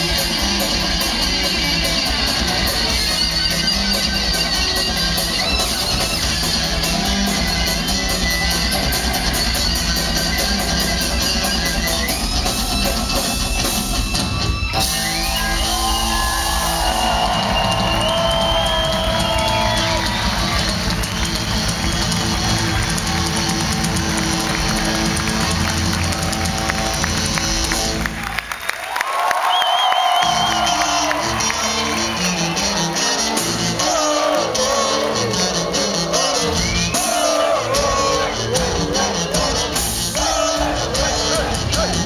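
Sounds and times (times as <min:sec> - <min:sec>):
rock music on amplified cellos: 0:00.0 - 0:28.3, 0:30.2 - 0:42.0
drum kit: 0:00.0 - 0:28.7, 0:30.0 - 0:42.0
audience cheering: 0:14.1 - 0:42.0.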